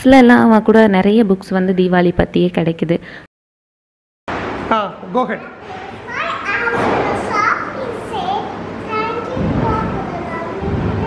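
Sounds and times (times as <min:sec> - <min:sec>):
young girl speaking: 0:05.4 - 0:11.0.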